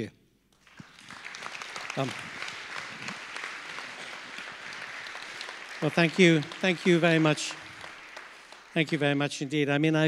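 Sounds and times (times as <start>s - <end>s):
audience clapping: 0.5s - 10.0s.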